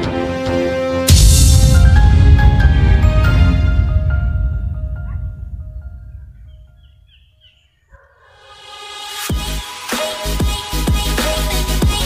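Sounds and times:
background music: 0.0 - 7.1, 8.1 - 12.0
rising swell: 1.1 - 7.3.

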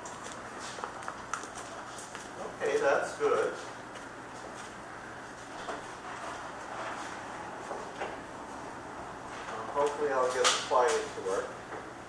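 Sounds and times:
people moving and handling things: 0.0 - 11.9.

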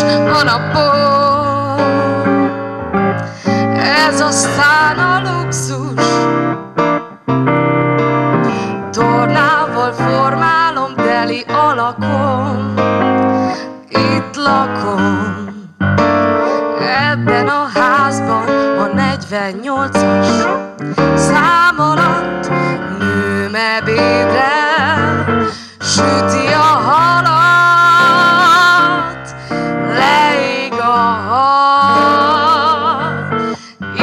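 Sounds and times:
woman singing into a microphone: 0.0 - 6.6, 8.5 - 34.0
instrumental accompaniment: 0.0 - 34.0.

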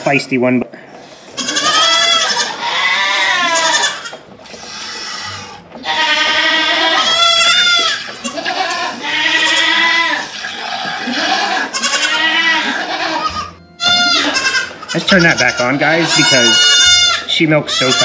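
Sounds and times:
goats bleating: 1.0 - 18.0.

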